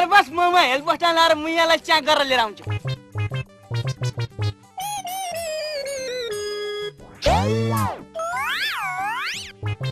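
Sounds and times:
cartoon boing: 0:07.2 - 0:09.9.

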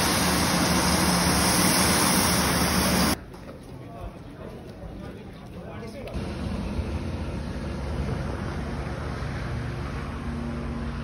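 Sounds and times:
propeller plane engines running: 0:00.0 - 0:03.2, 0:06.2 - 0:11.0.

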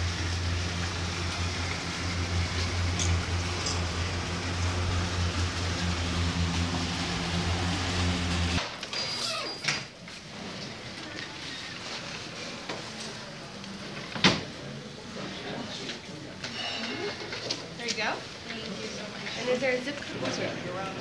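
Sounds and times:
low mechanical hum: 0:00.0 - 0:08.6.

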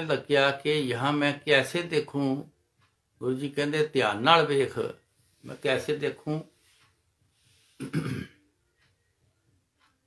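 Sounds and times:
man clearing his throat: 0:07.8 - 0:08.4.

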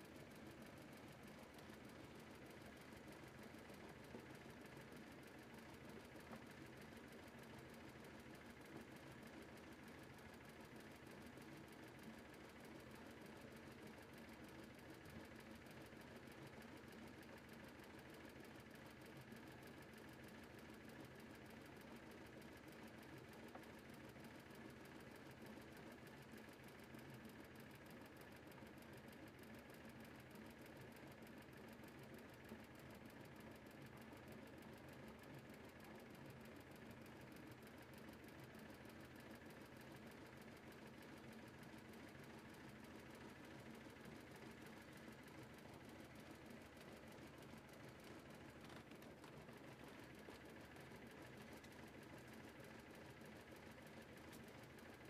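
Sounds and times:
faint motor boat engine running: 0:00.0 - 0:55.0.

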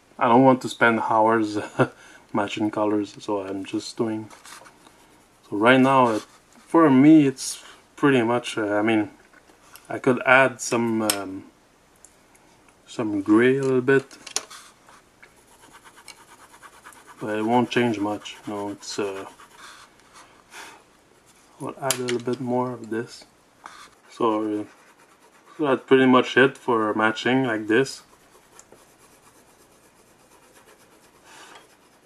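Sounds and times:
pencil scratching on paper: 0:14.5 - 0:20.4, 0:23.7 - 0:25.8, 0:27.5 - 0:32.0.

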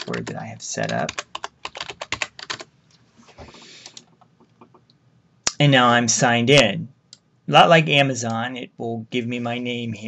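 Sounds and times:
computer keyboard typing: 0:00.0 - 0:02.7.

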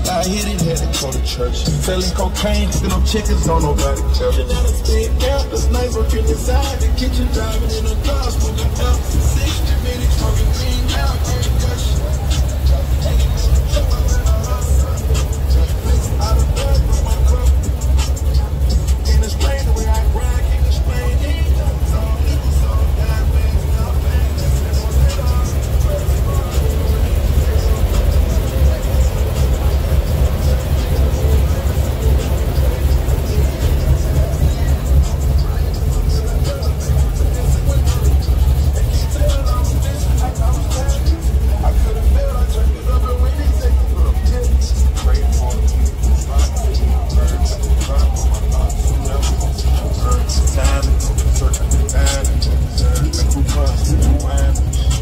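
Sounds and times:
heavy bass line: 0:00.0 - 0:55.0
hip hop music: 0:00.0 - 0:55.0
rapping: 0:00.0 - 0:55.0.

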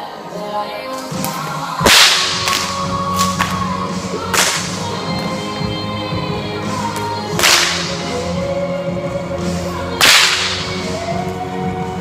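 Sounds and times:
music: 0:00.0 - 0:12.0
bullwhip crack echoing: 0:01.8 - 0:03.6, 0:04.3 - 0:04.8, 0:07.4 - 0:08.0, 0:10.0 - 0:10.8.

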